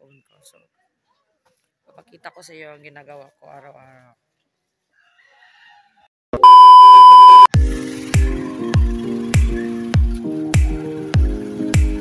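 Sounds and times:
loud electronic beep: 6.4 - 7.5
music with kick-drum beat: 7.6 - 12.0.

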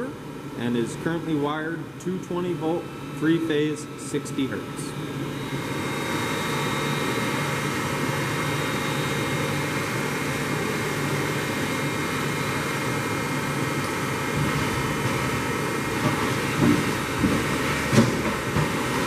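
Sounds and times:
machine mechanical hum with whine: 0.0 - 19.0.

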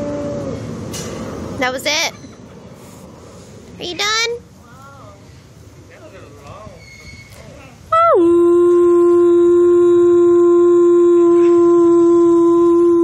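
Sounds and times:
wolf howling: 0.0 - 0.6.

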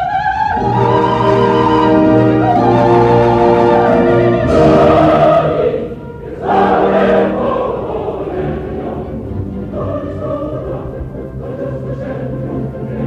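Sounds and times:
distant opera chorus with orchestra: 0.0 - 13.0.

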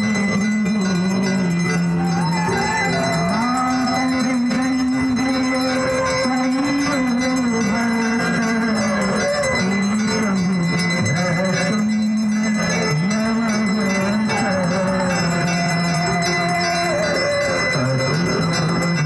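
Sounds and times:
continuous bell ringing: 0.0 - 19.0.

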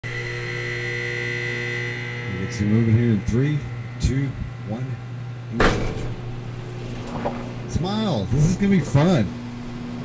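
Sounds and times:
high steady whine: 0.0 - 10.0
low hum: 0.0 - 10.0.

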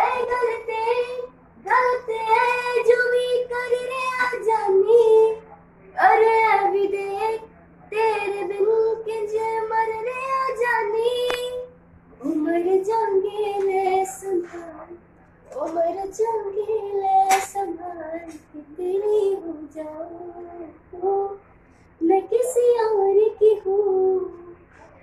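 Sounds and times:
woman singing unaccompanied: 0.0 - 21.4, 22.0 - 24.6.

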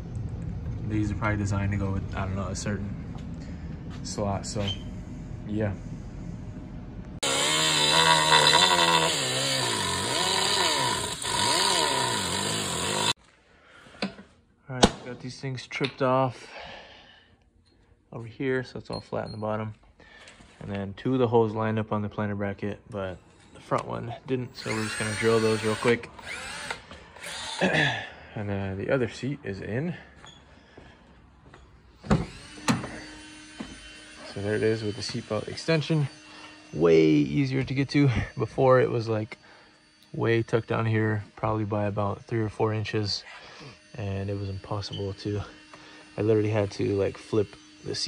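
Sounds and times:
grinder cutting metal: 7.2 - 13.2, 24.5 - 27.7, 32.2 - 48.0
faint steady hum: 13.2 - 48.0.

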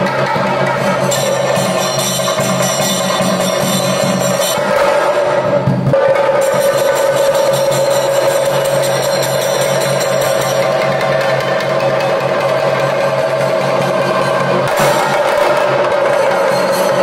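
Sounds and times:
drums beaten with sticks: 0.0 - 17.0
high ringing tone: 1.1 - 4.7.

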